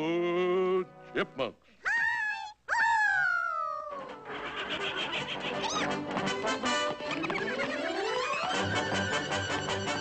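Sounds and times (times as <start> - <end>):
squeaky cartoon voice wailing: 1.9 - 6.0
orchestral music: 5.9 - 10.0.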